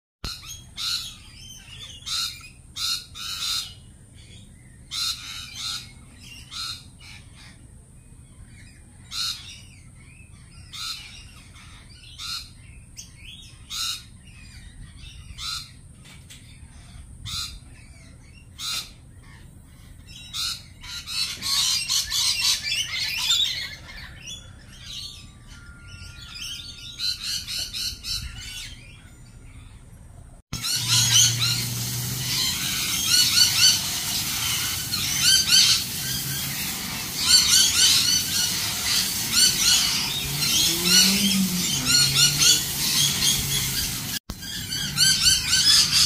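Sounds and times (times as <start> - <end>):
lorikeets screeching: 0.2 - 7.6, 8.4 - 15.8, 16.7 - 29.8, 30.6 - 46.0.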